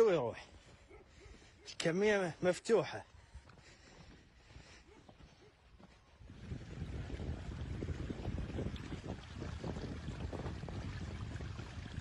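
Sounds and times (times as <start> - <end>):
wind buffeting microphone: 6.2 - 12.0.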